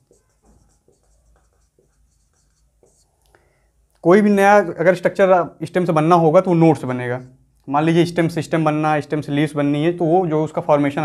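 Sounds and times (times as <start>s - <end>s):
marker squeaking on whiteboard: 0.0s - 3.2s.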